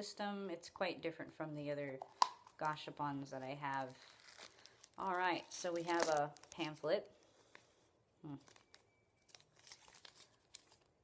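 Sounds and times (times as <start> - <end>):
plastic packaging crinkling: 3.4 - 7.7, 8.3 - 11.0.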